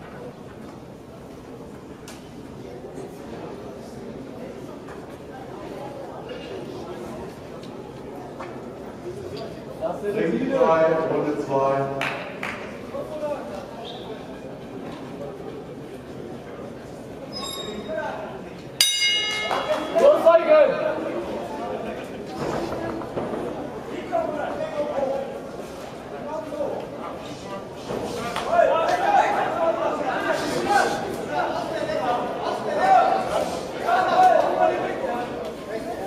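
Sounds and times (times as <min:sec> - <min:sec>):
faint chatter in echoing hall: 0:00.0 - 0:36.0
boxing ring bell ringing: 0:17.4 - 0:17.9, 0:18.8 - 0:20.0.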